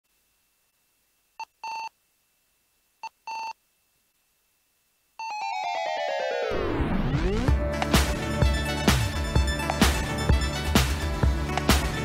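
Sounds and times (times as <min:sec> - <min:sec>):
electronic jingle beeps: 0:05.2 - 0:07.4
electronic theme music: 0:05.3 - 0:12.0.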